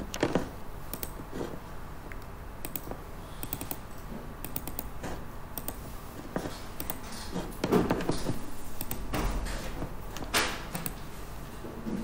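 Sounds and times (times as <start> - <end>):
computer keys clicking: 0.0 - 1.3, 2.1 - 7.2, 8.0 - 11.1.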